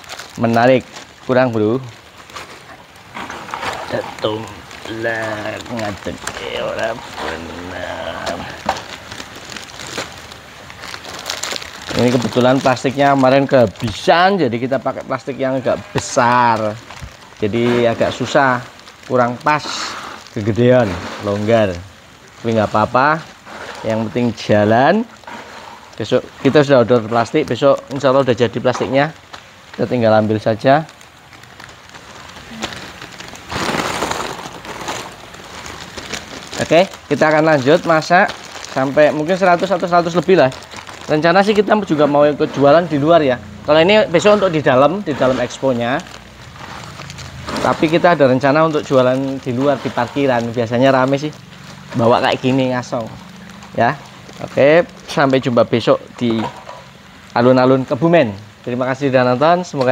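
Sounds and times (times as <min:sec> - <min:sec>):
plastic bags crinkling: 0:00.0 - 0:59.9
popcorn rustling: 0:00.0 - 0:59.9.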